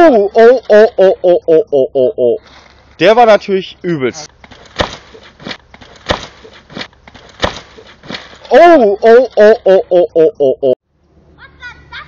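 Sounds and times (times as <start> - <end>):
short thumps: 4.3 - 8.5.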